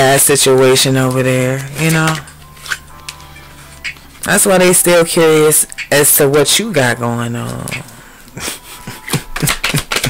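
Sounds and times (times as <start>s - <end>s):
faint background music: 0.0s - 10.0s
card flicks: 9.1s - 10.0s.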